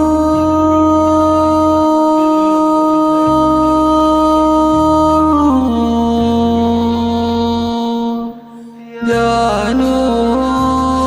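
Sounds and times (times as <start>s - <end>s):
low musical accompaniment: 0.0s - 11.0s.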